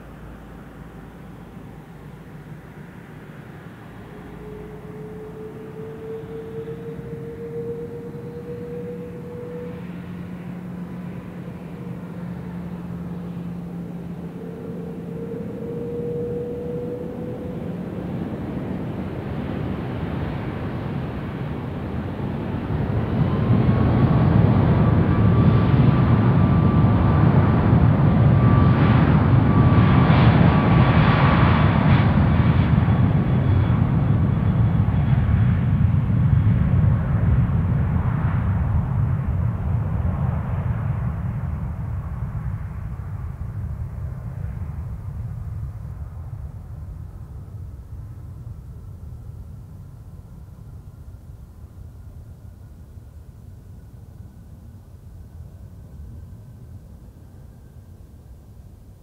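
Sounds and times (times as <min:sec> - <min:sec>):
jet engines rumbling: 0:00.0 - 0:58.8
jet engine whine: 0:00.0 - 0:59.0.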